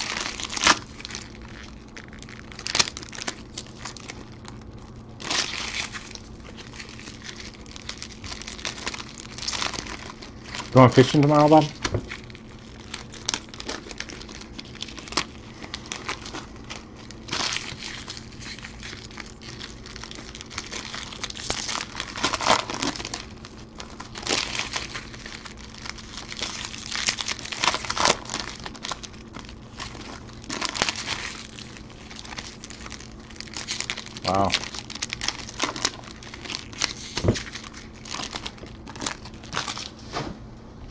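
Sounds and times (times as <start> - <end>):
foil wrappers crinkling: 0.0 - 40.1.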